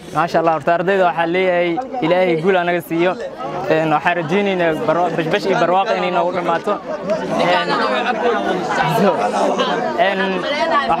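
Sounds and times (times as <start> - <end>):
young men talking: 0.0 - 11.0.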